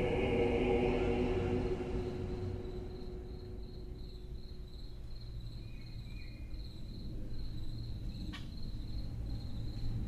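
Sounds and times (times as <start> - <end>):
low bass drone: 0.0 - 4.6
high cricket-like chirp: 0.2 - 10.0.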